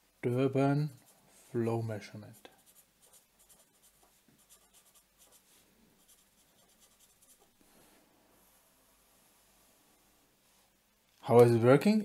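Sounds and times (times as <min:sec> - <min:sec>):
felt-tip pen scratching on paper: 0:02.4 - 0:07.5.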